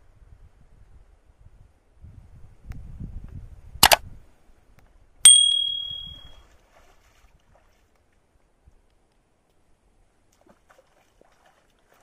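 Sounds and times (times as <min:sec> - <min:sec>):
bell ding: 0:05.3 - 0:06.3.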